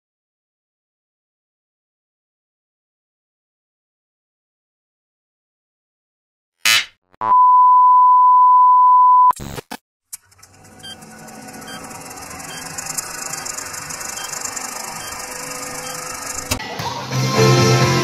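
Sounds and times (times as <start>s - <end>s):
steady beep tone: 7.2s - 9.3s, 11.6s - 16.5s.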